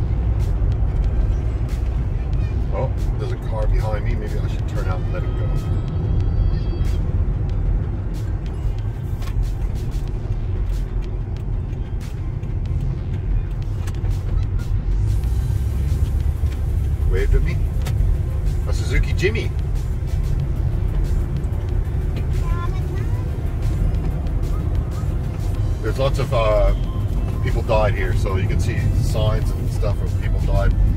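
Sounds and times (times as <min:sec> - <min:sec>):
van engine and tyre rumble: 0:00.0 - 0:30.9.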